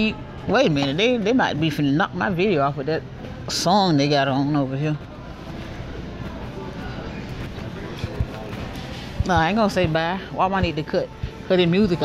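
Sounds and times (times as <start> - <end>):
song over store speakers: 0.0 - 12.0
store background noise: 0.0 - 12.0.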